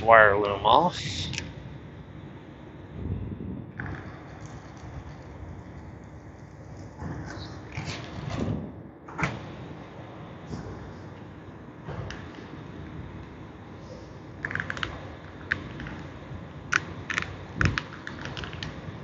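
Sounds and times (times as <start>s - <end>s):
sharp plastic clicks: 14.4s - 16.1s, 16.7s - 18.8s.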